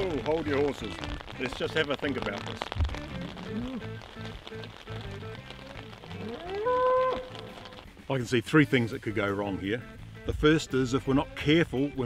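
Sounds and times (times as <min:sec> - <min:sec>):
soft background music: 0:00.0 - 0:12.0
cow mooing: 0:06.2 - 0:07.7.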